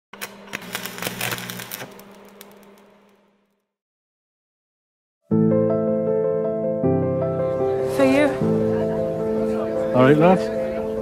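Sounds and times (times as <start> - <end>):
crackling clicks: 0.2 - 3.2.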